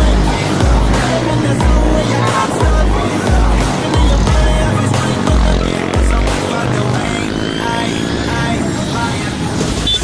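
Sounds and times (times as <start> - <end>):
motorcycle engines running: 0.0 - 10.0.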